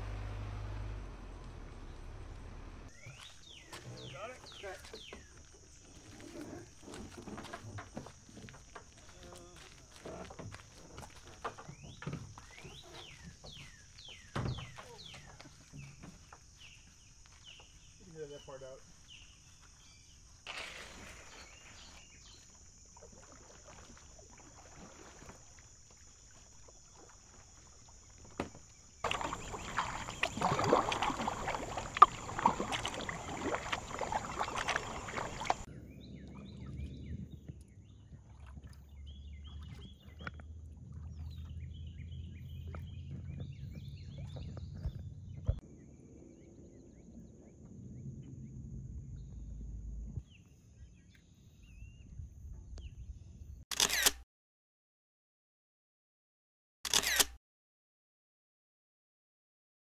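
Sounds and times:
kayak paddle splashing: 0:00.0 - 0:18.0, 0:18.9 - 0:35.7, 0:37.8 - 0:45.0
wind and water rumble: 0:00.0 - 0:53.6
water gurgling against hull: 0:22.0 - 0:45.6.

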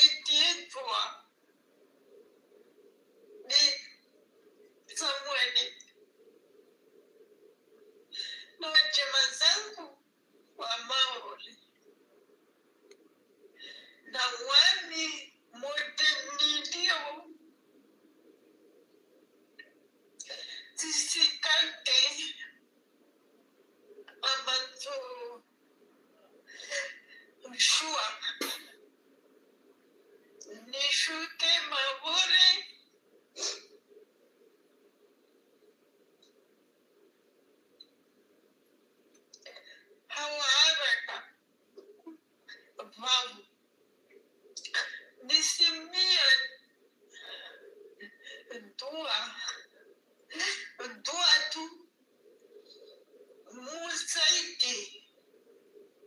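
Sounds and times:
faint steady hum: 0:00.0 - 0:56.0
person speaking: 0:30.5 - 0:32.7, 0:44.6 - 0:46.6, 0:47.2 - 0:49.6, 0:50.3 - 0:51.8, 0:53.5 - 0:55.0.

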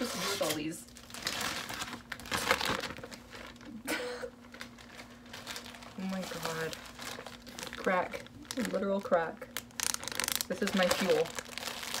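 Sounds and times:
plastic bag crinkling: 0:00.0 - 0:03.8, 0:04.4 - 0:12.0
person laughing: 0:03.7 - 0:04.4.

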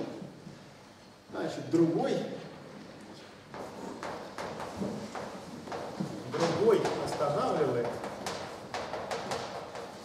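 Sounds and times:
chalk tapping and scratching: 0:03.5 - 0:10.0.

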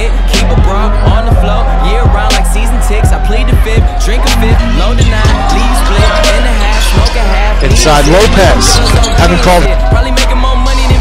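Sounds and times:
rapping over a bass beat: 0:00.0 - 0:11.0.

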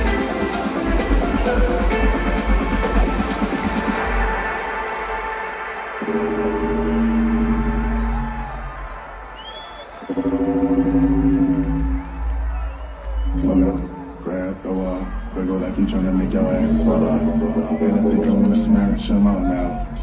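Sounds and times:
held synth chords: 0:00.0 - 0:09.4, 0:10.1 - 0:12.6, 0:13.3 - 0:19.5
electronic dance music: 0:00.0 - 0:20.0
deep bass: 0:06.0 - 0:08.9, 0:10.1 - 0:20.0.

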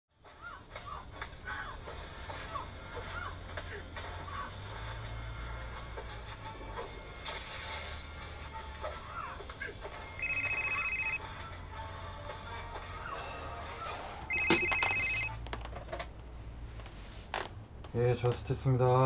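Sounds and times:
light background music: 0:00.1 - 0:15.5
desk telephone ringing: 0:10.2 - 0:11.3, 0:14.3 - 0:15.4.

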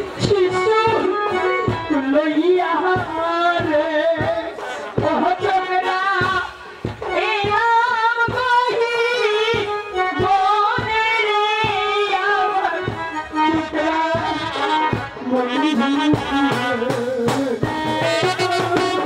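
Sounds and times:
instrumental accompaniment: 0:00.0 - 0:19.0
steady drum beat: 0:00.0 - 0:19.0
woman singing into microphone: 0:00.0 - 0:19.0.

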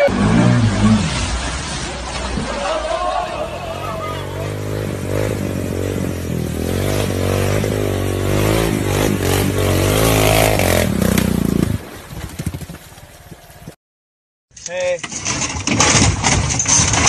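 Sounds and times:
quad bike engine revving: 0:03.6 - 0:11.8.

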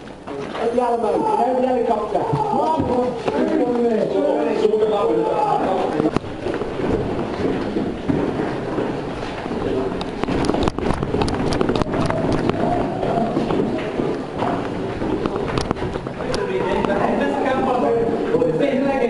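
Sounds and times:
muffled voices: 0:00.3 - 0:19.0
gear and clothing handling noise: 0:02.0 - 0:18.8.

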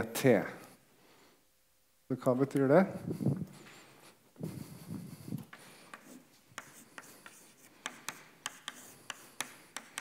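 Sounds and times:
chalk writing on blackboard: 0:05.4 - 0:10.0.

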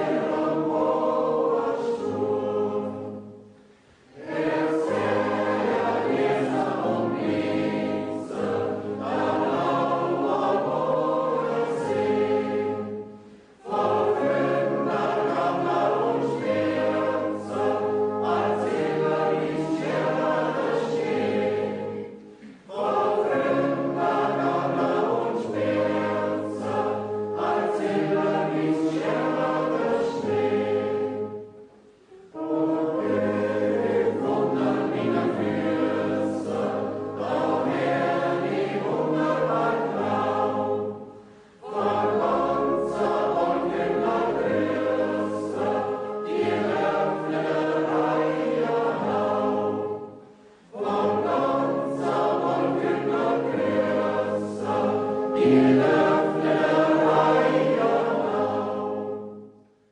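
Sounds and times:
choir singing: 0:00.0 - 0:59.6.

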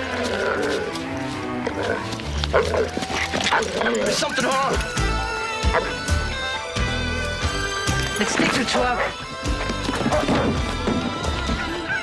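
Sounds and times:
soundtrack music: 0:00.1 - 0:12.0.

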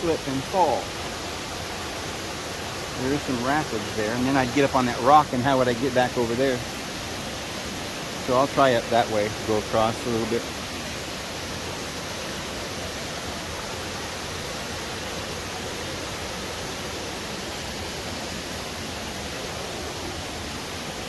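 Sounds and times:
creek water over rapids: 0:00.0 - 0:21.0.

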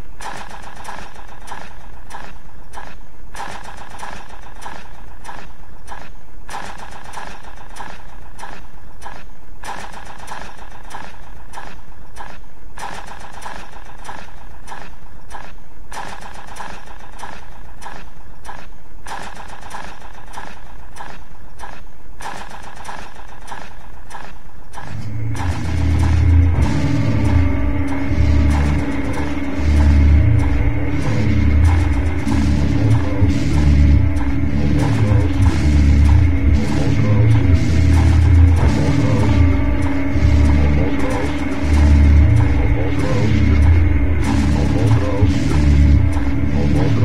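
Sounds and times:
industrial noise drone: 0:00.0 - 0:47.0.

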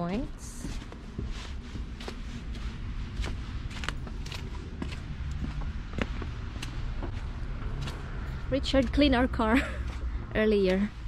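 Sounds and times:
low rumble: 0:00.0 - 0:11.0
footsteps crunching on wet snow: 0:00.3 - 0:11.0.

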